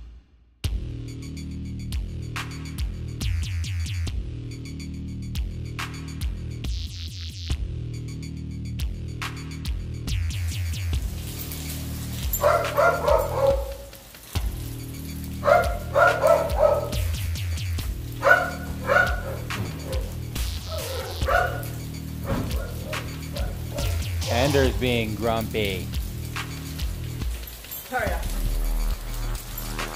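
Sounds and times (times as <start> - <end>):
background music with bass: 0.0 - 27.7, 28.3 - 29.9
dog barking: 12.3 - 14.0, 15.4 - 17.3, 18.1 - 24.2.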